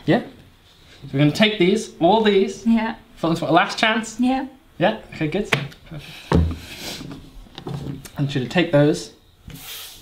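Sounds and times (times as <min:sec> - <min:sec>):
hands thumping on wooden table: 0:06.3 - 0:06.6.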